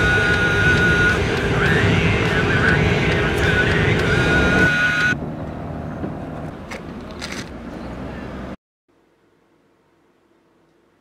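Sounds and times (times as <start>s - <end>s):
wavering high tone: 0.0s - 5.2s
low engine rumble: 0.0s - 8.6s.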